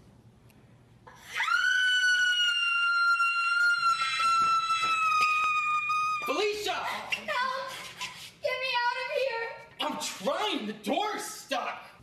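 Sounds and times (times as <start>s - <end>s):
woman screaming: 1.2s - 6.4s.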